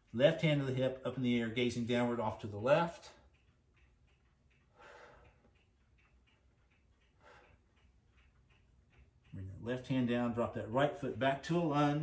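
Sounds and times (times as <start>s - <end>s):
faint regular ticking: 0.0s - 12.0s
soft breath: 4.7s - 5.5s, 7.1s - 7.8s.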